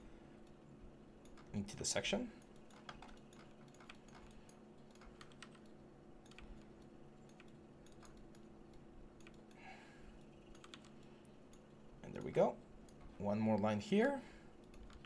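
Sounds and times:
low steady hum: 0:00.0 - 0:15.0
computer keys clicking: 0:01.2 - 0:01.7, 0:02.4 - 0:13.8, 0:14.5 - 0:15.0.

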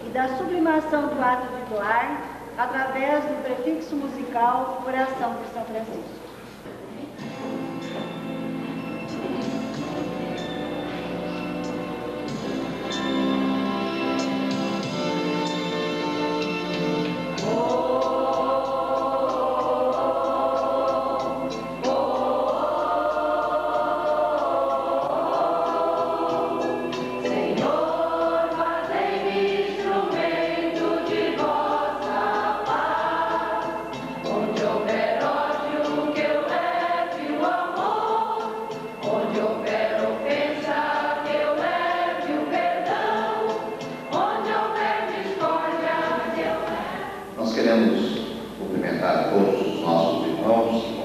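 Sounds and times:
choir singing devotional song: 0:07.2 - 0:51.0.

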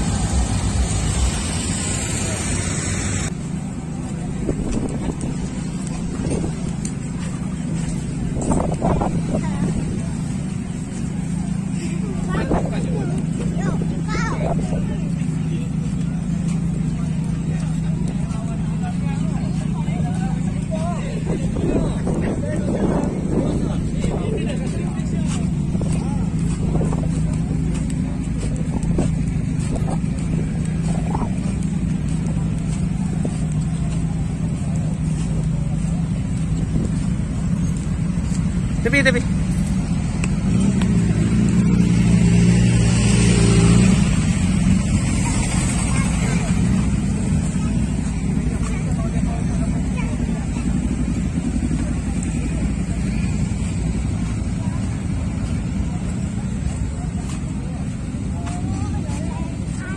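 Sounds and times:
crowd chatter: 0:00.0 - 0:59.9
motorcycle engines running: 0:00.0 - 0:59.9.

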